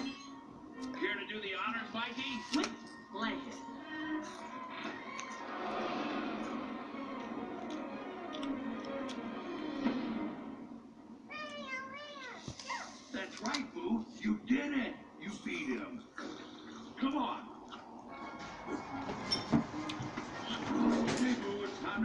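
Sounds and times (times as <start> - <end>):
film soundtrack music: 0.0 - 11.3.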